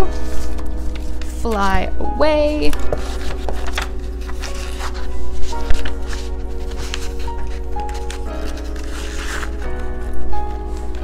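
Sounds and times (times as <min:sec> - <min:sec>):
sheet music rustling: 0:00.0 - 0:11.0
slow held chords music: 0:00.0 - 0:11.0.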